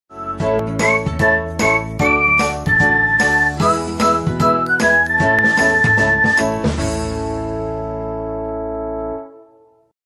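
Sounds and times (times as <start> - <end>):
upbeat intro music: 0.1 - 9.7.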